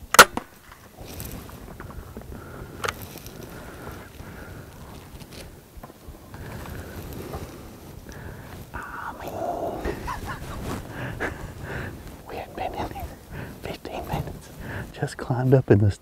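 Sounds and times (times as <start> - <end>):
crossbow firing crack: 0.1 - 0.8
low rustling: 0.4 - 16.0.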